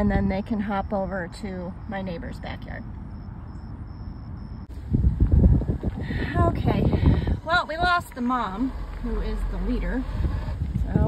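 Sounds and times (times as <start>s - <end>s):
car road noise: 0.0s - 11.0s
wind buffeting microphone: 4.6s - 11.0s.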